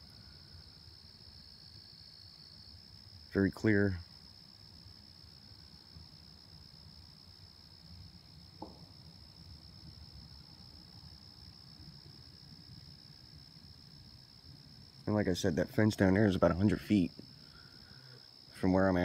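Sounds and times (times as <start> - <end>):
crickets chirring: 0.0 - 19.0.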